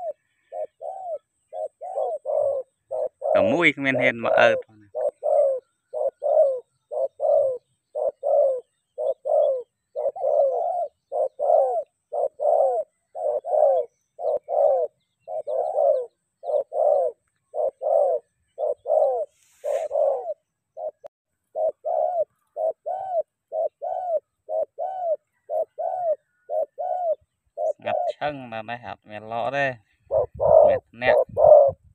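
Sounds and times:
dove cooing: 0.0 - 31.9.

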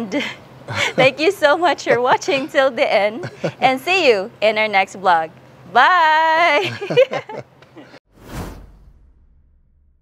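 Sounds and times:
whoosh sound effect: 8.1 - 10.0
deep rumble: 8.2 - 10.0.

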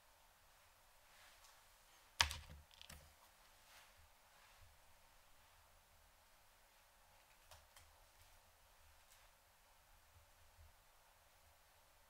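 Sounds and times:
plastic box clicking: 2.2 - 3.0.

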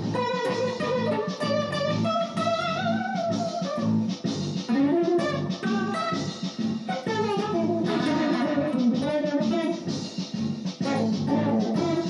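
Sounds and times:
band with bass guitar: 0.0 - 12.0
electric guitar lead melody: 0.0 - 12.0.

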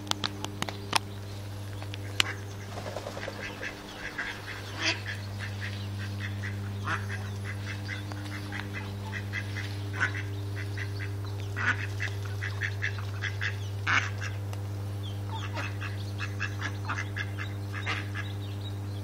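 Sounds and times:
ducks quacking: 2.0 - 14.4, 15.3 - 18.4.

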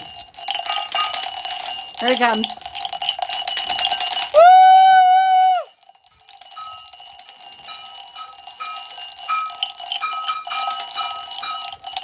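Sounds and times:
bell rung rapidly: 0.0 - 12.0.

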